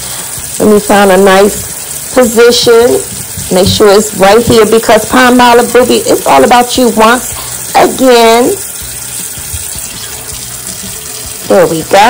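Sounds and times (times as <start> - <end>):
faucet water pouring into dishpan: 0.0 - 12.0.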